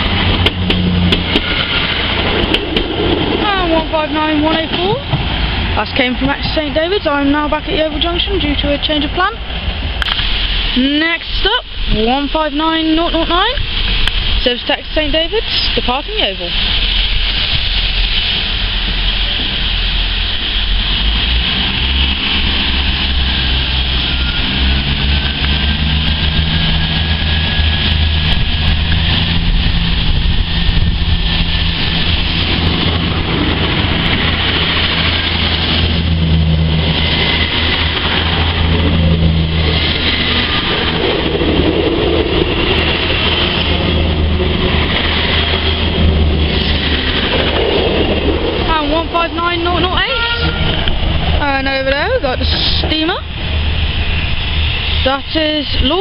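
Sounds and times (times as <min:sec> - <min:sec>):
diesel train engine drone: 0:00.0 - 0:56.0.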